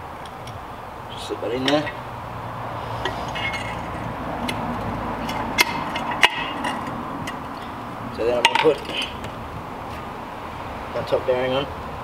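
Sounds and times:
light handling noise: 3.0s - 10.1s.

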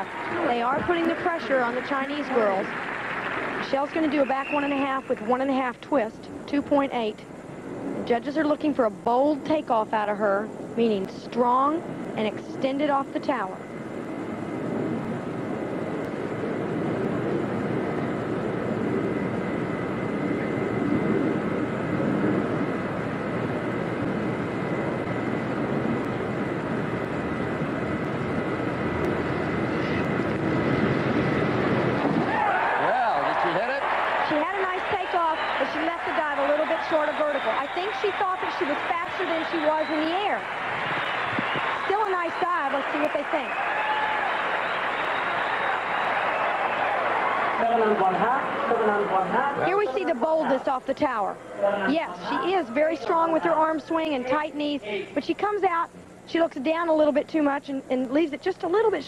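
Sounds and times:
voices talking: 3.6s - 7.2s, 32.6s - 40.5s, 41.1s - 43.6s, 47.6s - 59.0s.

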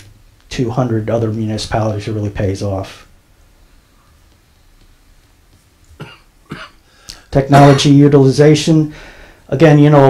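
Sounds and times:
person coughing: 6.0s - 6.9s, 7.5s - 8.0s.

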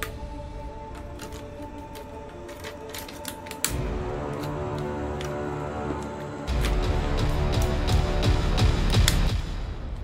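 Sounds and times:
background music: 0.0s - 10.0s
plastic toy parts clicking: 0.9s - 6.8s.

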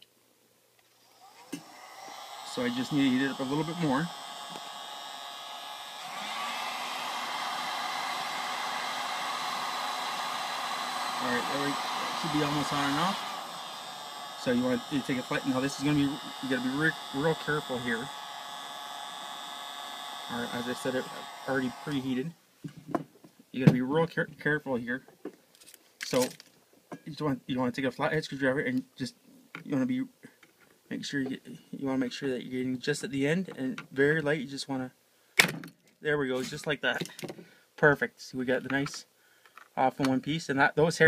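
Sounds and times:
heat gun fan whine: 0.8s - 22.4s
hot-air nozzle hissing: 1.2s - 22.2s
heat gun click: 1.3s - 22.0s.

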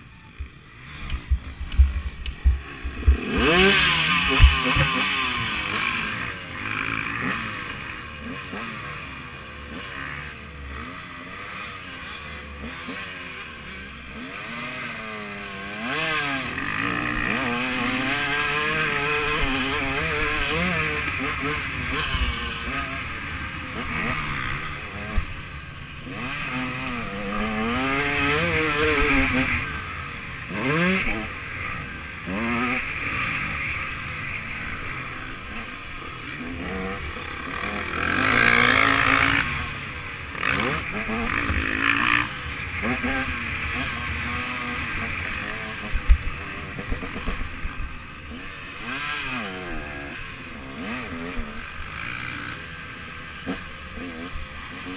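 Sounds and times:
motorcycle engine revving: 0.0s - 54.9s.

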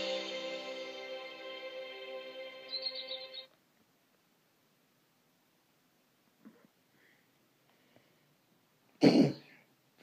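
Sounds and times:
held musical chord: 0.0s - 3.5s
high twinkling flourish: 0.0s - 3.5s
faint background hiss: 0.0s - 10.0s.

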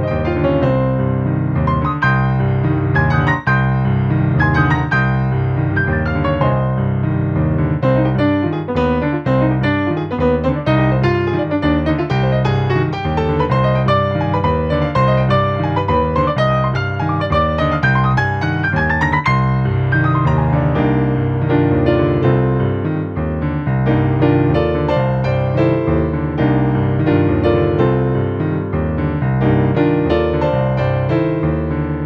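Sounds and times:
jazz piano playing: 0.0s - 32.0s.

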